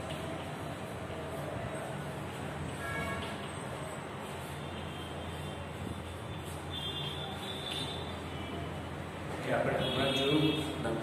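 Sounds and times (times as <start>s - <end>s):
constant background noise: 0.0s - 11.0s
low mechanical hum: 0.0s - 11.0s.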